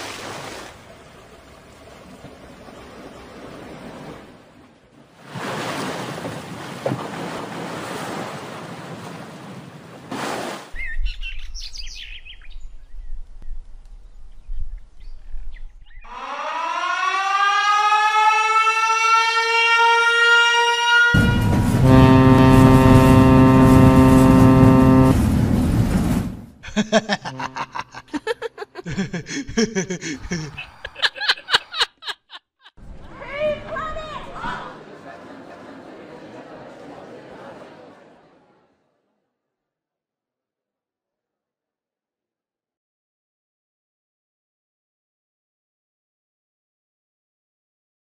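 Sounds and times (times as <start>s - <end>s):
deep horn blast: 19.5s - 26.6s
low rumble: 21.2s - 26.6s.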